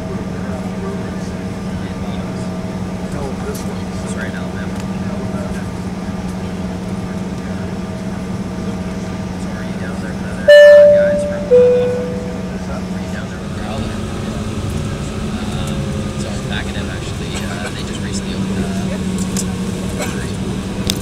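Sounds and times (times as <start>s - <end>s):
two-tone cabin chime: 10.5s - 12.9s
aircraft cabin engine hum: 10.5s - 13.1s.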